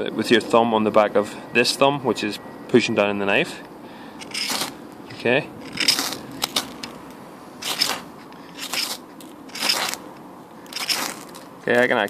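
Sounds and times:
fire steel scraping knife spine: 0:04.2 - 0:07.0, 0:07.6 - 0:10.0, 0:10.6 - 0:11.5.

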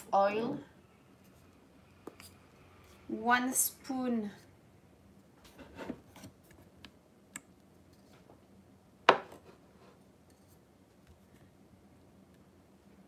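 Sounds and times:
knock on wooden cutting board: 0:09.1 - 0:09.3.

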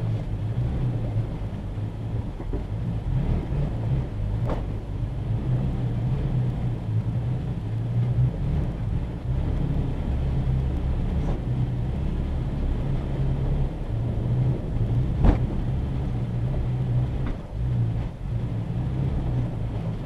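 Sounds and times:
truck engine rumble inside cab: 0:00.0 - 0:20.0.

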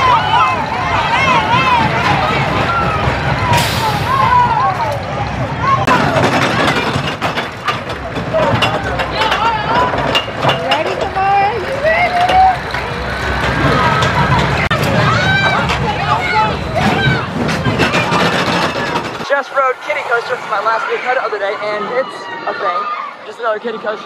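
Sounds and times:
riders shrieking and yelling: 0:00.0 - 0:10.3, 0:11.1 - 0:23.3
coaster wheels clicking on track: 0:00.0 - 0:21.0.

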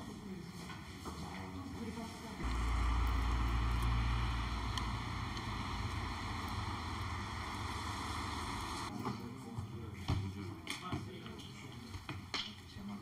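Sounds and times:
heavy low rumble: 0:02.4 - 0:08.9
hiss: 0:02.4 - 0:08.9.

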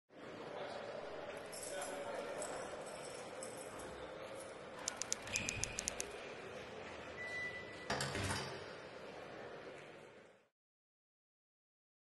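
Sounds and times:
sharp clicks: 0:04.9 - 0:06.1.

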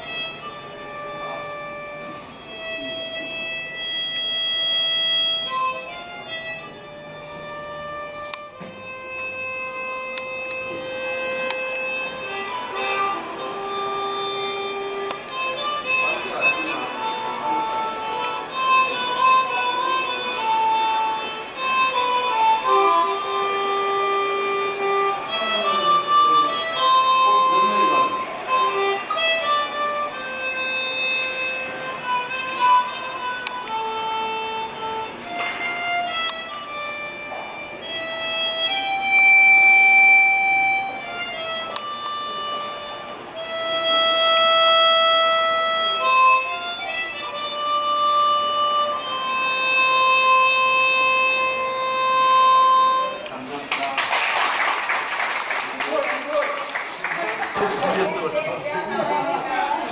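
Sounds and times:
harmonica slow melody: 0:00.0 - 0:53.8.

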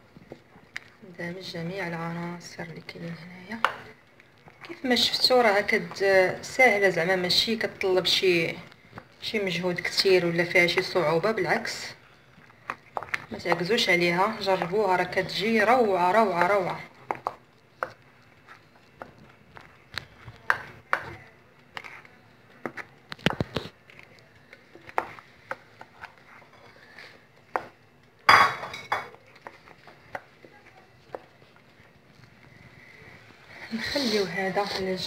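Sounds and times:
utensil stirring cream in bowl: 0:01.8 - 0:28.2, 0:29.0 - 0:35.0.

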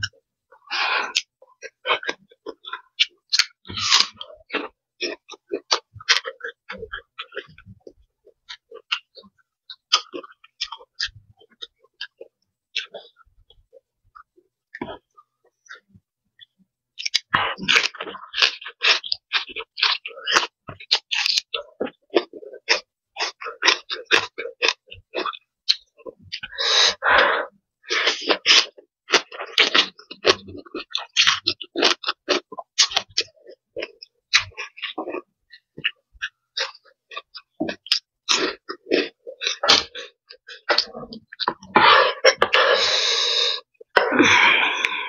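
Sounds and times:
chewing and crunching: 0:00.0 - 0:27.3, 0:27.9 - 0:45.0.

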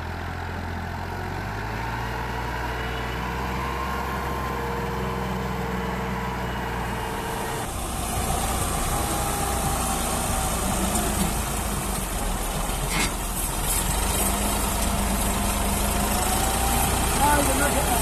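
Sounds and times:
tractor diesel engine under load: 0:00.0 - 0:18.0
vehicle engines running: 0:00.0 - 0:18.0.

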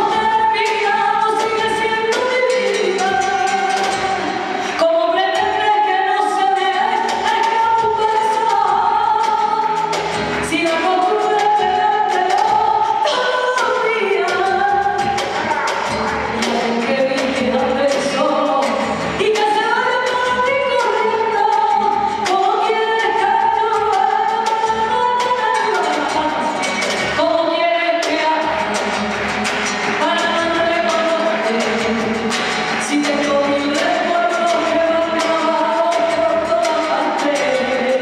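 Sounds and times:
woman singing into microphone: 0:00.0 - 0:38.0
drum and percussion strokes: 0:14.3 - 0:19.5
band accompaniment: 0:14.6 - 0:19.4.

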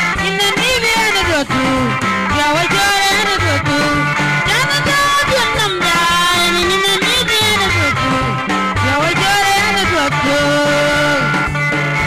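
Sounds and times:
bass line: 0:00.0 - 0:12.0
plucked guitar lines: 0:00.0 - 0:12.0
steady beat: 0:00.1 - 0:12.0.

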